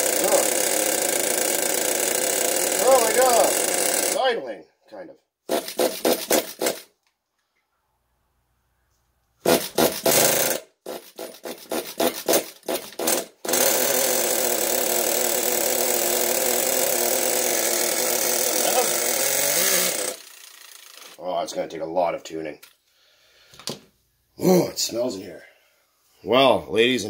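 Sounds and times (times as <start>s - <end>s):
small engine sputtering and running: 0.0s - 4.2s, 9.5s - 21.2s.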